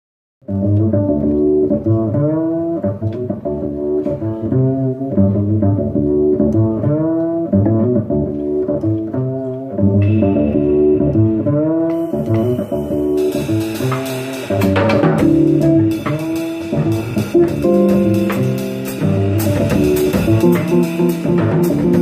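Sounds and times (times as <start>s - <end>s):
plucked double bass: 0.4s - 22.0s
electric guitar chords: 0.5s - 22.0s
drums and cymbals: 10.0s - 22.0s.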